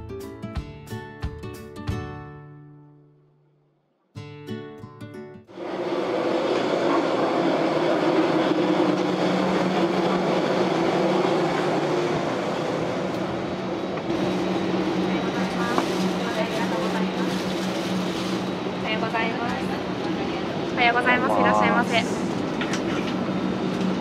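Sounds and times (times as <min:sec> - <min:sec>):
air-conditioning hum: 0:18.9 - 0:23.1
faint voices: 0:20.2 - 0:22.4.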